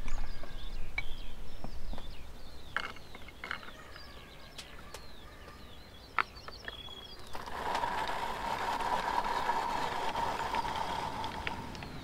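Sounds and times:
drum grater grinding nuts: 7.2 - 11.9.

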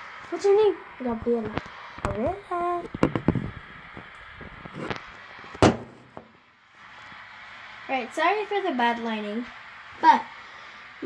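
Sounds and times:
sharp knock: 5.6 - 6.3.

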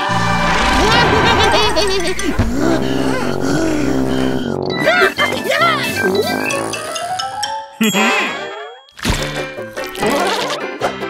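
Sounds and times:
cartoon background music: 2.2 - 11.0.

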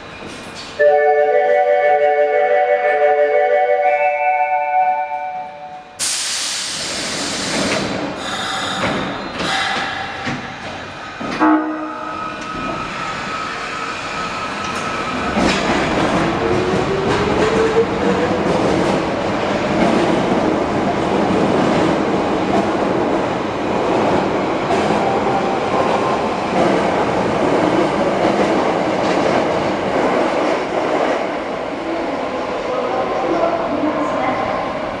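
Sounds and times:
train wheel and rail noise: 0.0 - 35.0.

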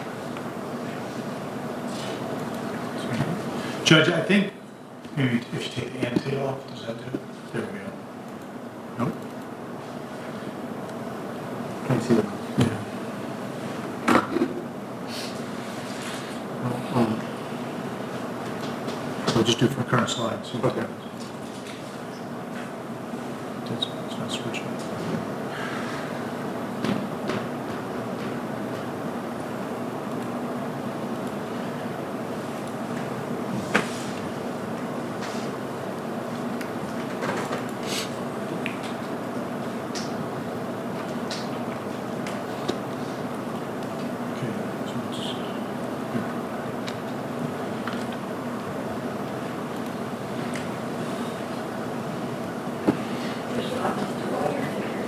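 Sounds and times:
low hum and hiss: 0.0 - 55.0.

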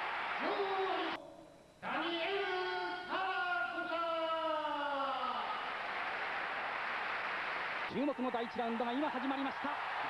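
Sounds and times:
arena crowd noise: 0.0 - 1.2, 5.1 - 10.0.

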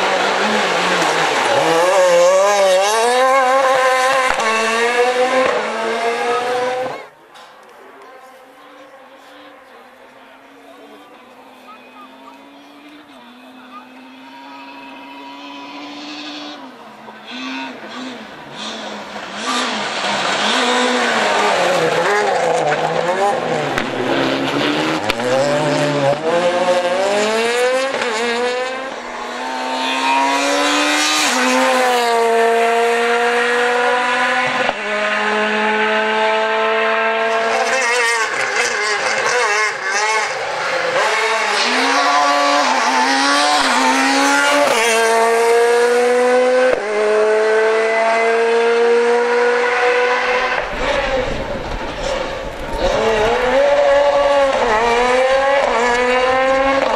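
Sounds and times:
rally car engine at full throttle: 0.0 - 56.9.

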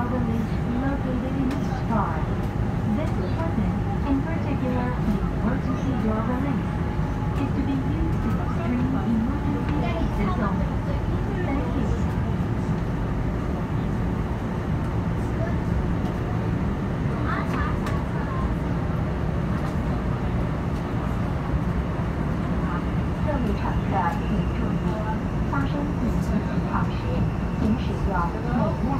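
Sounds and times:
subway train rumbling: 0.0 - 28.9.

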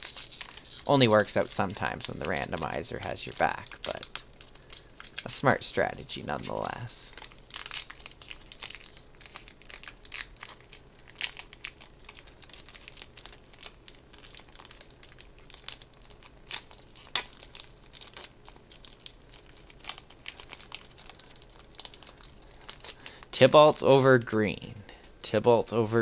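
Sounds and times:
foil wrapper crinkling: 0.0 - 24.3.

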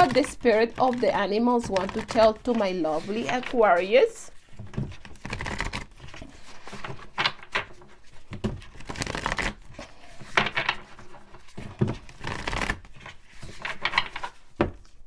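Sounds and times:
cards being shuffled: 0.0 - 15.0.

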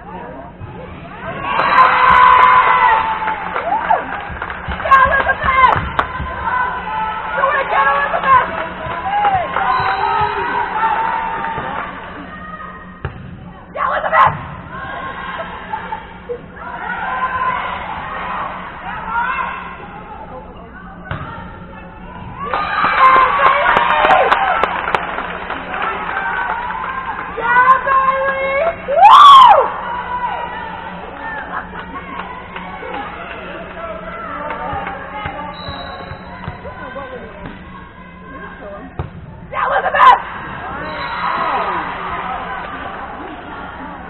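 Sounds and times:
voices of players and spectators: 0.0 - 44.0
volleyball thudding: 4.2 - 6.5, 13.0 - 13.5, 21.1 - 21.4, 38.9 - 39.4.

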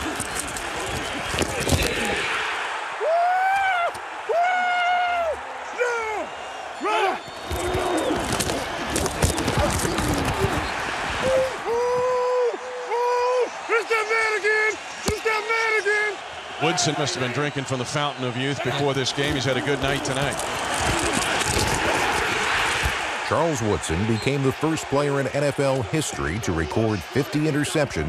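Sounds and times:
football pads and helmets colliding: 0.0 - 2.5, 7.2 - 12.0, 15.0 - 15.3, 19.2 - 23.1
stadium crowd noise: 0.0 - 28.0.

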